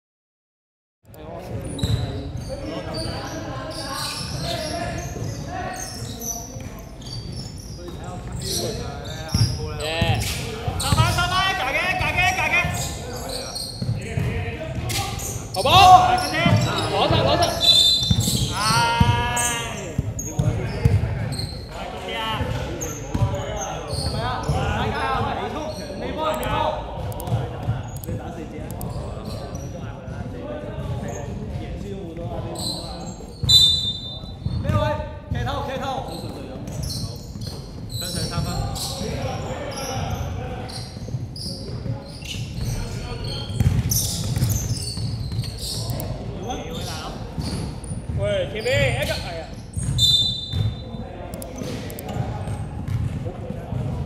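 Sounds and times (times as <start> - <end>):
players calling out: 1.8 - 29.7
basketball bouncing on wooden court: 13.7 - 15.0, 16.2 - 21.2, 40.0 - 45.9, 46.7 - 50.8, 51.6 - 54.0.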